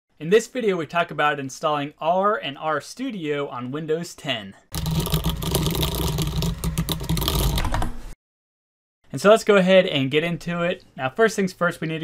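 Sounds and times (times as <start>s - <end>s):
rapid keyboard typing: 4.7s - 8.0s.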